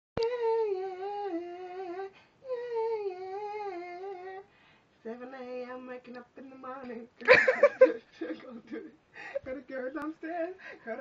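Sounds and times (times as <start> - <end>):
woman humming: 0.2 - 4.5.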